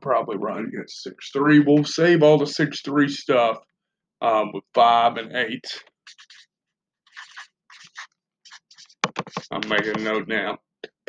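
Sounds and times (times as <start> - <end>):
pen scratching on paper: 7.2 - 10.2.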